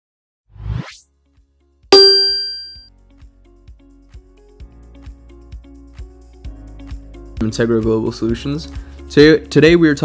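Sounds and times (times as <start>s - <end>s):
bright metallic ding: 2.0s - 2.8s.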